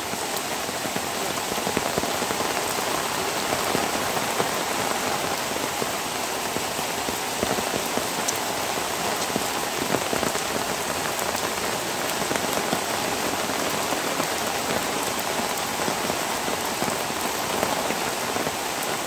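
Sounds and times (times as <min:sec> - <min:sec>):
steady rain falling: 0:00.0 - 0:19.0.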